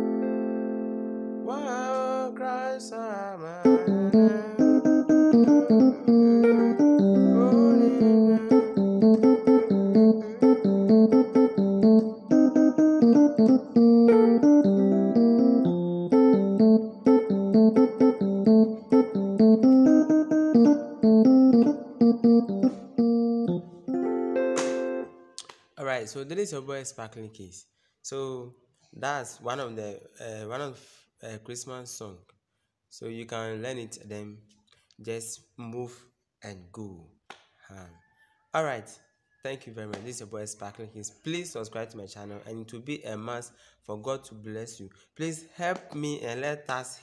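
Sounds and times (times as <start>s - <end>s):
electronic keyboard piano melody: 0.0s - 2.7s, 3.6s - 25.4s.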